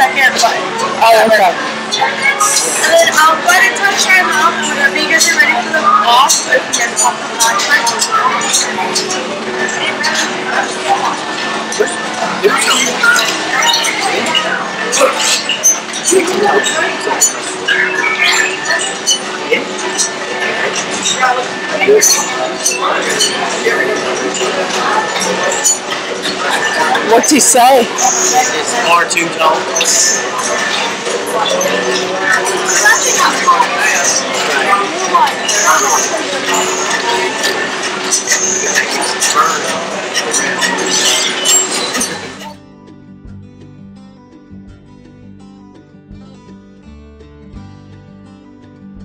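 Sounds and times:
crowd chatter: 0.0 - 42.6
noisy room: 0.0 - 49.0
quiet background music: 0.0 - 49.0
robot electronic chirps and beeps: 15.3 - 20.1.

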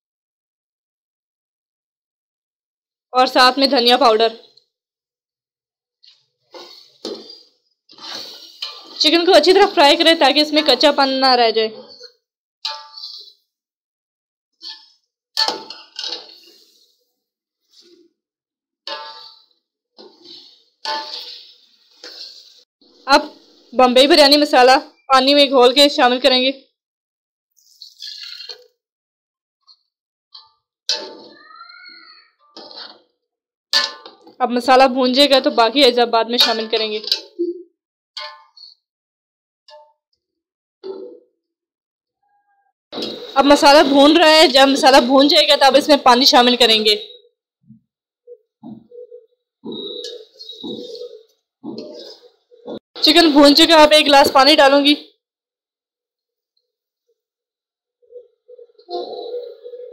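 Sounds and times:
metal spoon clanking in pot: 12.7 - 13.3, 14.6 - 16.6, 18.9 - 19.5, 20.2 - 22.3, 33.8 - 34.3, 36.3 - 37.4
spoon clanging on metal pot: 15.4 - 16.4, 18.9 - 19.5, 33.8 - 34.3, 36.4 - 37.4.

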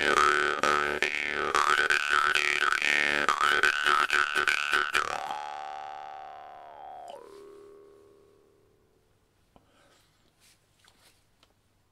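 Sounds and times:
jaw harp twanging: 0.0 - 8.5.

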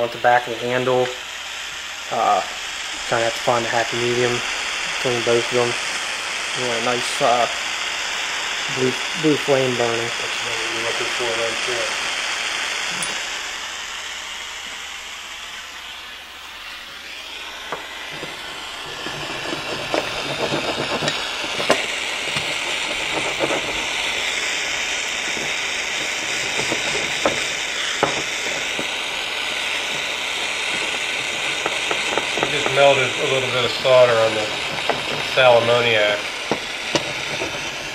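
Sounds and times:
hot tip crackling and sizzling: 0.0 - 37.9
torch flame hissing: 0.0 - 37.9.

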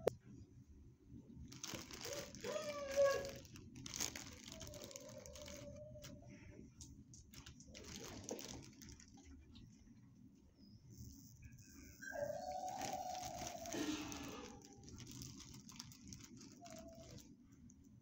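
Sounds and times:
dog whining: 2.0 - 3.5, 4.3 - 6.3, 11.9 - 14.9.

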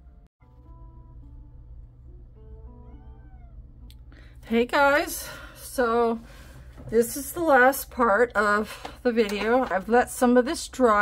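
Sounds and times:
faint cat meows: 2.8 - 3.7.

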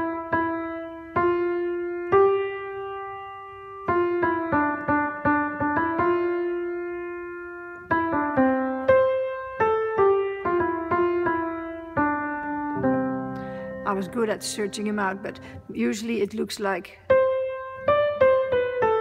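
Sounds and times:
slow piano melody: 0.0 - 16.0, 17.1 - 19.0.

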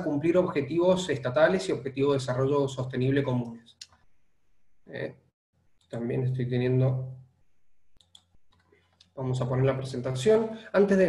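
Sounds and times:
man speaking: 0.0 - 3.6, 4.9 - 5.2, 5.9 - 7.1, 9.2 - 11.0
computer mouse clicks: 7.9 - 9.2.

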